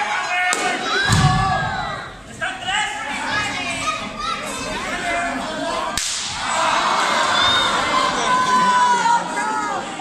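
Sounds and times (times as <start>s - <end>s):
crowd shouting and cheering: 0.0s - 10.0s
sharp slapping crack: 6.0s - 6.4s.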